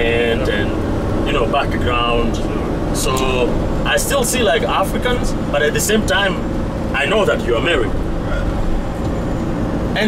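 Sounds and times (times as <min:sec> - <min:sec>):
minibus engine and road noise: 0:00.0 - 0:10.0.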